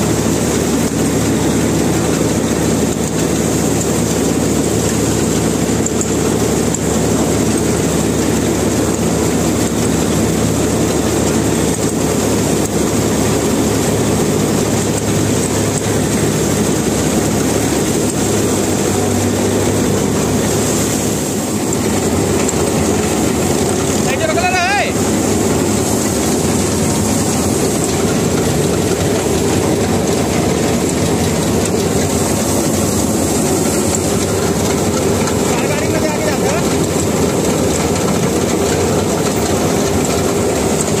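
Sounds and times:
combine harvester machinery: 0.0 - 41.0
grain pouring: 0.0 - 41.0.

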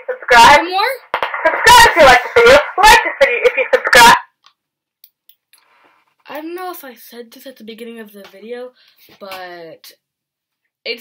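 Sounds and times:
voice through megaphone: 0.0 - 4.3.

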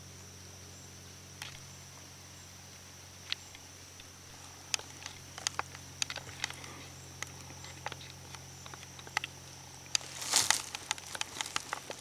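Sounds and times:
faint high-pitched whine: 0.0 - 12.0
rustle: 0.0 - 12.0
light clicks and ticks: 7.2 - 12.0.

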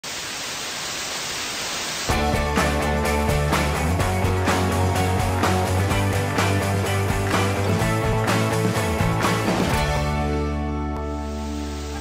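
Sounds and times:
television static hiss: 0.0 - 2.1, 11.1 - 12.0.

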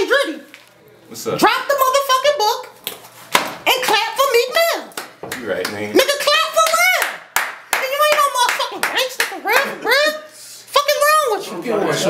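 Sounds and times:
group clapping: 3.3 - 10.0.

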